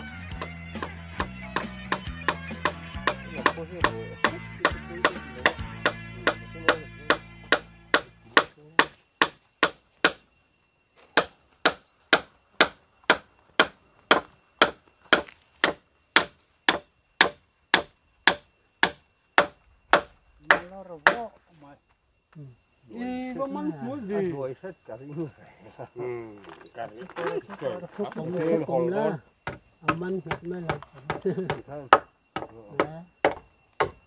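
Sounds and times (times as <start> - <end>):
background music: 0.0 - 8.5
tool striking wood: 0.0 - 10.2, 11.1 - 21.3, 29.4 - 34.0.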